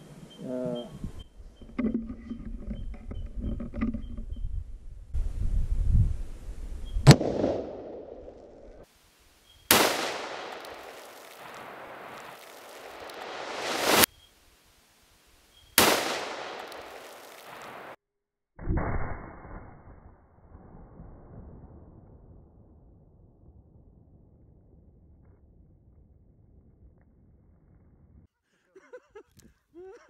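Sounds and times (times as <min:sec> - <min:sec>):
rifle shot with echo: 0:07.0 - 0:08.3, 0:09.7 - 0:11.9, 0:15.8 - 0:18.0.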